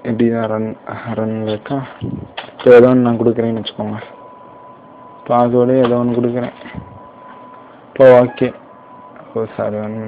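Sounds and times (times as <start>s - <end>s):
faint high tone: 6.8s - 9.1s.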